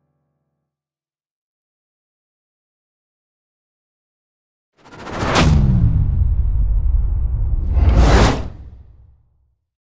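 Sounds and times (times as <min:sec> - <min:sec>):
whoosh: 0:04.8 - 0:09.3
deep low rumble: 0:05.5 - 0:09.2.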